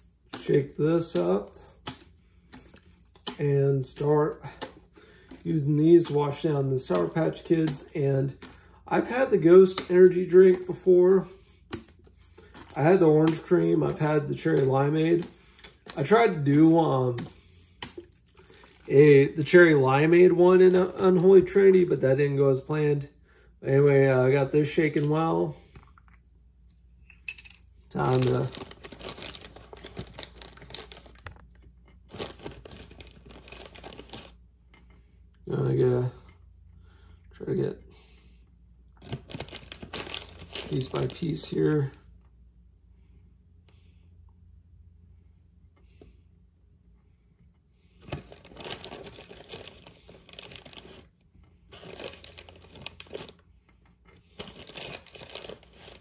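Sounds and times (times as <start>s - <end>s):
plastic candy bag crinkling: 12.4s - 17.2s, 27.9s - 34.4s, 39.0s - 41.9s, 48.0s - 53.5s, 54.2s - 56.0s.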